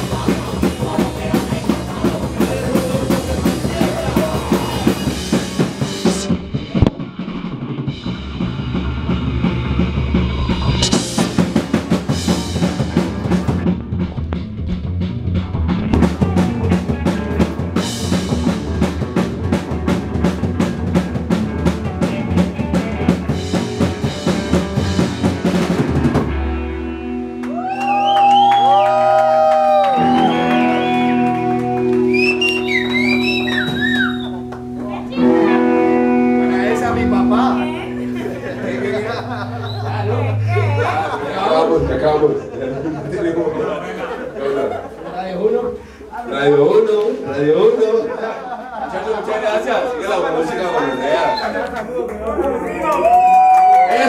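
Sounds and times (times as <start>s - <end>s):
fast driving drums: 0.0s - 26.6s, 28.3s - 35.2s
band playing live: 0.0s - 45.0s.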